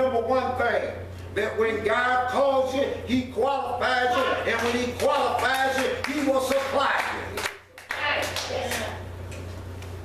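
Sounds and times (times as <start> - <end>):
people clapping: 4.2 - 9.0.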